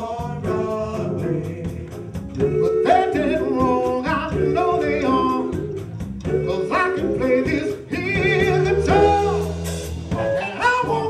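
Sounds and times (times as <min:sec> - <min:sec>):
drum kit beat: 0:00.0 - 0:11.0
male vocal group singing: 0:00.0 - 0:11.0.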